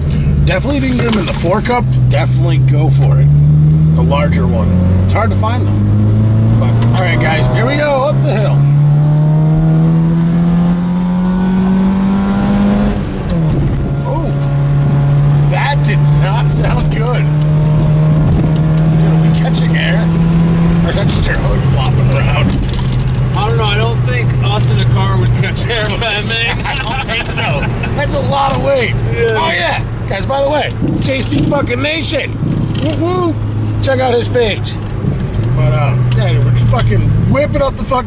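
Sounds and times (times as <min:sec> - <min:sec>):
car engine revving uphill: 0:00.0 - 0:38.0.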